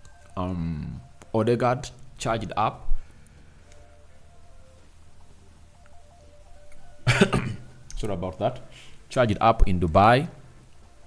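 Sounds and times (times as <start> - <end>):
faint background music: 0.0 - 11.0
man coughing loudly: 7.1 - 7.7.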